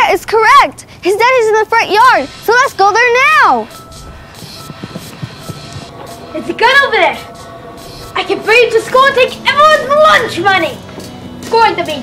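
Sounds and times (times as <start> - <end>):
people speaking dialogue: 0.0 - 3.7, 6.3 - 7.3, 8.1 - 10.8, 11.4 - 12.0
soft background music: 3.2 - 12.0.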